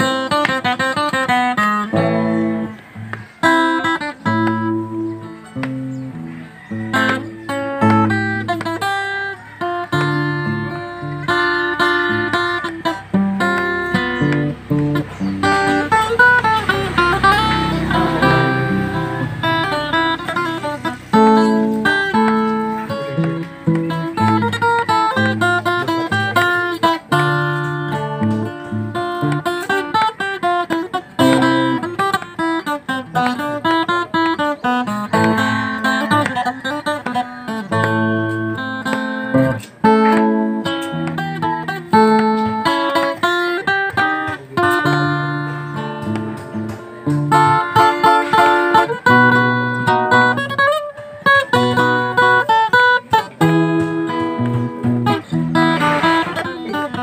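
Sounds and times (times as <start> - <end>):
fingerstyle acoustic guitar: 0.0 - 57.0.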